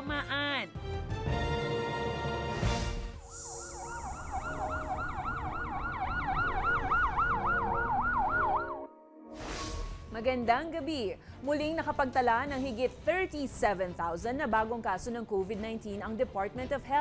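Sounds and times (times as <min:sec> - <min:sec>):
fast wailing siren: 0:03.2 - 0:08.9
whoosh: 0:09.3 - 0:10.1.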